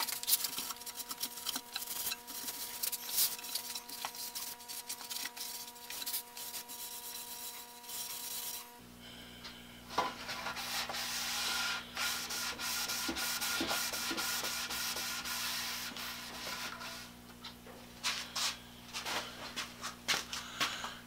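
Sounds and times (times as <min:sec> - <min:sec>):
rag rubbing on wood: 0:00.0 - 0:08.7, 0:10.1 - 0:17.0.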